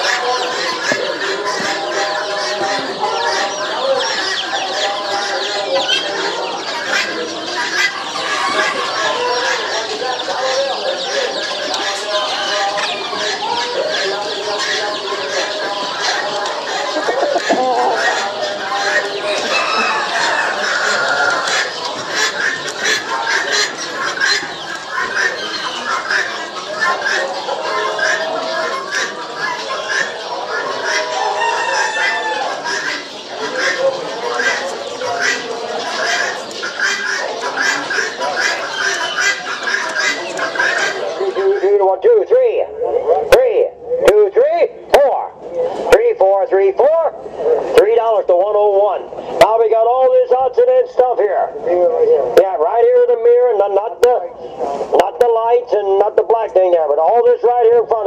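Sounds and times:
chickens clucking and calling: 0.0 - 58.0.

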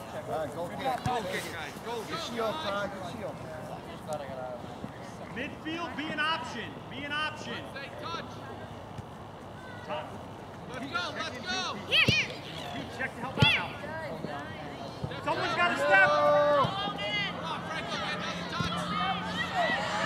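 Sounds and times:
players and spectators shouting: 10.8 - 20.0.

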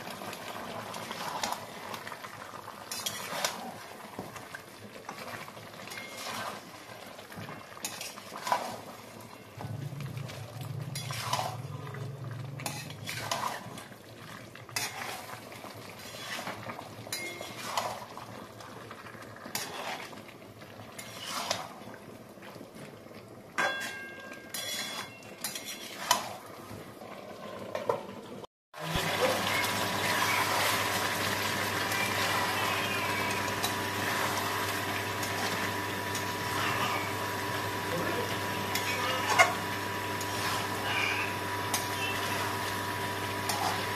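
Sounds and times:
masala sizzling: 0.0 - 43.9
spatula scraping pan: 2.9 - 3.7, 5.9 - 6.7, 10.9 - 11.7, 12.6 - 13.8, 14.8 - 18.1, 19.5 - 20.1, 21.0 - 21.8, 23.7 - 26.4, 38.5 - 42.4, 43.4 - 43.9.

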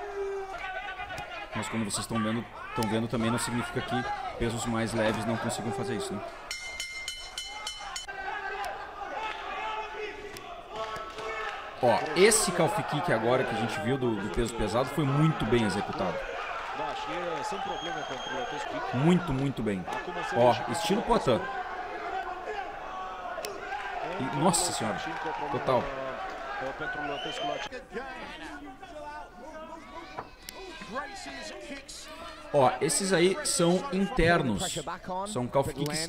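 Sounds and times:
man talking: 1.5 - 6.3, 11.8 - 16.2, 16.8 - 21.4, 24.1 - 36.0
commentator talking: 11.8 - 16.2, 31.0 - 36.0.

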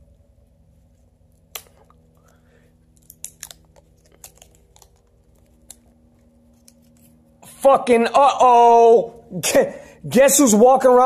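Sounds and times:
duct tape tearing and crackling: 3.0 - 7.1.

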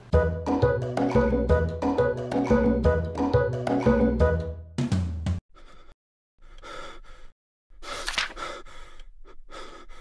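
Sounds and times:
background music: 0.0 - 5.4
person gasping breaths: 5.5 - 10.0.

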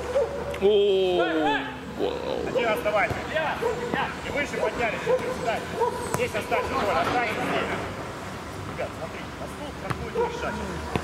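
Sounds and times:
men shouting and calling: 0.5 - 7.9.

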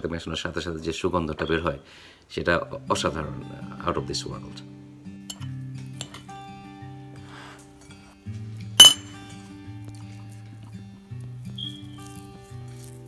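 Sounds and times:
slow background music: 2.4 - 13.0
sharp clink against plate: 5.3 - 6.3, 8.8 - 9.2.

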